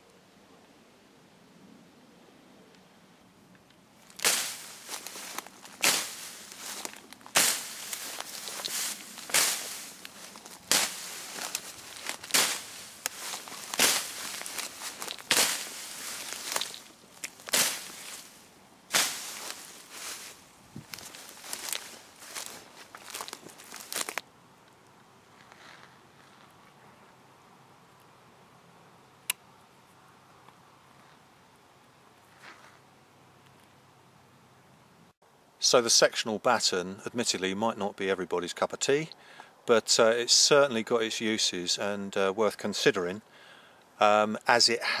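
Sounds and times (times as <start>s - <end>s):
blade swishing through grass: 4.0s - 24.2s
rustling of cut stems: 4.0s - 24.2s.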